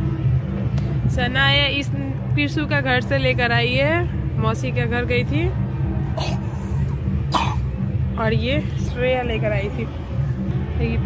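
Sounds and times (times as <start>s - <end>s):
steady low hum: 0.0s - 11.0s
person coughing: 6.2s - 6.4s, 7.3s - 7.7s.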